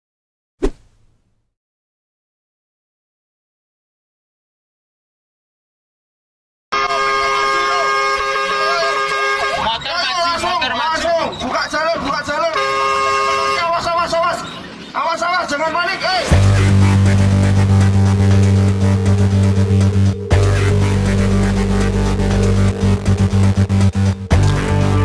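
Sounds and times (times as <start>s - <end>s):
fire engine horn blast: 6.7s - 9.8s, 12.4s - 14.0s
sharp impact sound effect: 16.2s - 24.2s.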